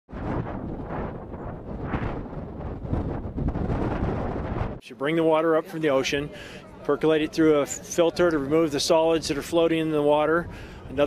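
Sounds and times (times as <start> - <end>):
wind buffeting microphone: 0.1 - 4.8.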